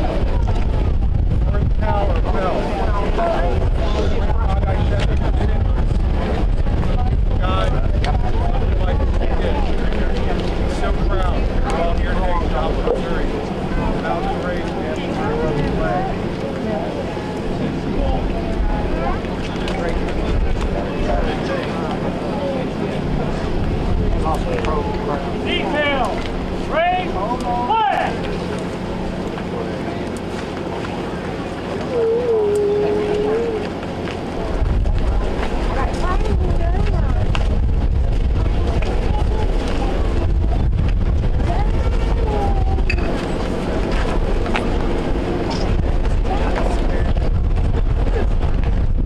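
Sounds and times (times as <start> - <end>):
crowd murmuring: 0.0 - 49.0
wind buffeting microphone: 0.0 - 49.0.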